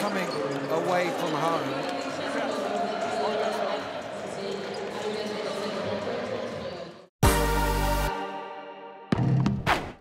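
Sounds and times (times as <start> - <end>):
crowd chatter: 0.0 - 7.1.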